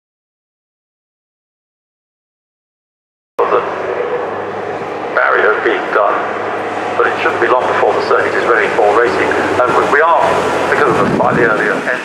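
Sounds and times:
commentator over loudspeakers: 0:03.4 - 0:12.0
low vehicle drone: 0:03.4 - 0:12.0.

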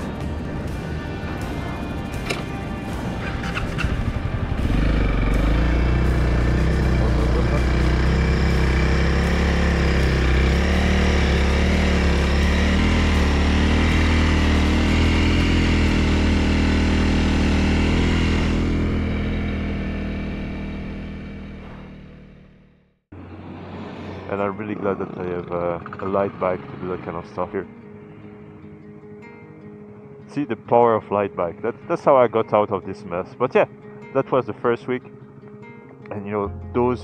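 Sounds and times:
dirt bike engine running: 0:00.0 - 0:22.9.

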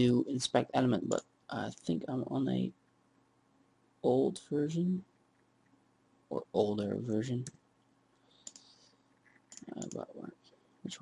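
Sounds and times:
computer mouse clicks: 0:08.4 - 0:10.1.

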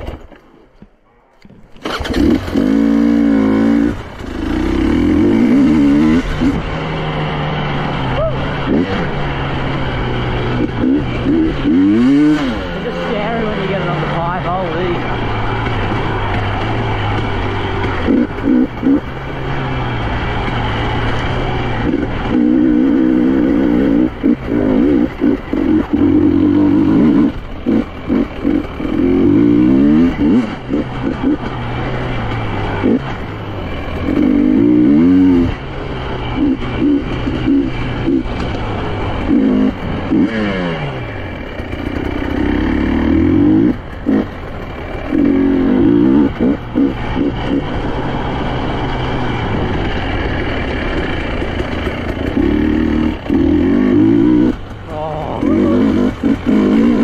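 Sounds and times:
motorcycle engine revving: 0:01.4 - 0:57.0.

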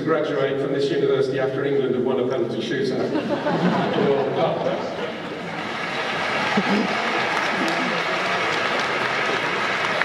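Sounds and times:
audience laughing: 0:03.0 - 0:05.6, 0:06.4 - 0:09.1
audience clapping: 0:05.1 - 0:10.0.

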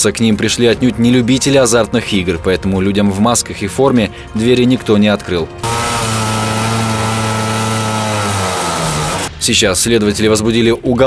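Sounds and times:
angle grinder motor whine: 0:05.6 - 0:09.3.

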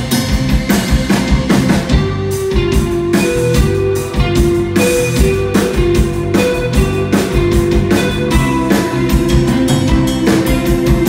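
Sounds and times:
electric guitar lead line: 0:00.0 - 0:11.0
steady drum beat: 0:00.0 - 0:11.0.

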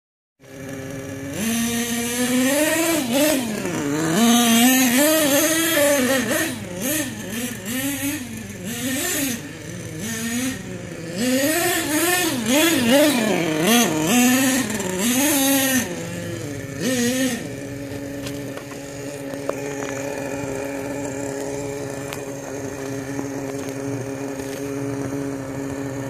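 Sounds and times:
rc truck nitro engine revving: 0:00.4 - 0:26.0.

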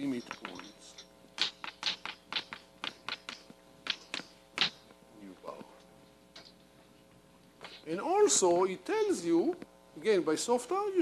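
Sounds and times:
chalk tapping on a blackboard: 0:01.4 - 0:04.8.

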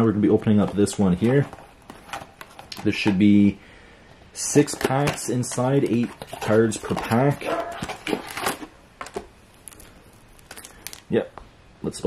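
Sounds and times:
card packaging rustling and clicking: 0:00.3 - 0:03.4, 0:04.4 - 0:11.1.

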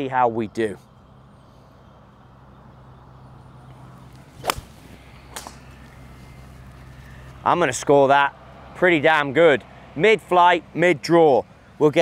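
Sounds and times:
steady low hum: 0:00.6 - 0:08.9
golf club striking ball: 0:04.1 - 0:06.0.

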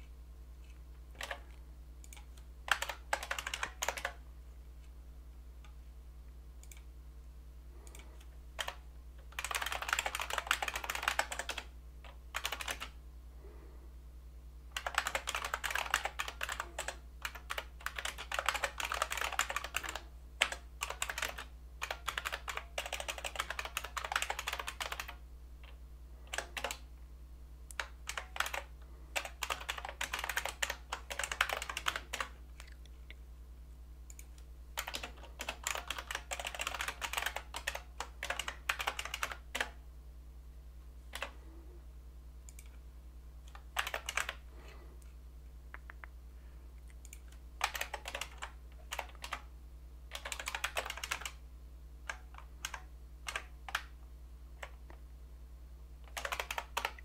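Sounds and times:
steady low hum: 0:00.0 - 0:57.0
typing on computer keyboard: 0:01.2 - 0:04.2, 0:07.9 - 0:13.0, 0:14.7 - 0:26.8, 0:27.7 - 0:32.8, 0:34.1 - 0:39.8, 0:41.1 - 0:41.4, 0:43.5 - 0:44.4, 0:47.0 - 0:49.5, 0:50.1 - 0:51.4, 0:52.0 - 0:53.9, 0:56.0 - 0:57.0.

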